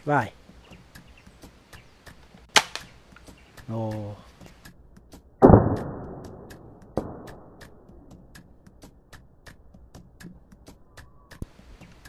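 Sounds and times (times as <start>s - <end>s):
toy dart blaster thump: 5.4s - 7.7s.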